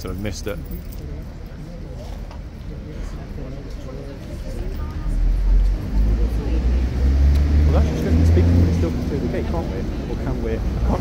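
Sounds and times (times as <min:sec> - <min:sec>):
faint voices: 0:00.0 - 0:11.0
vehicle engine rumbling: 0:00.0 - 0:11.0.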